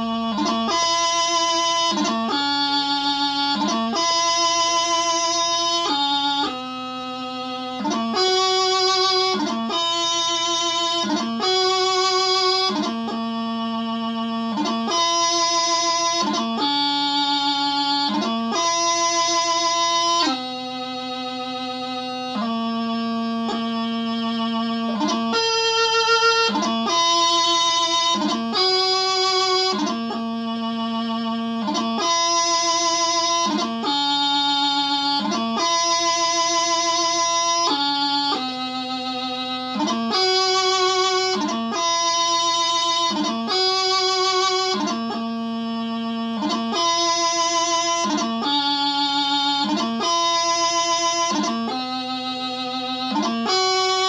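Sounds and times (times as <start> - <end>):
bagpipe practice chanter melody: 0.0 - 54.0.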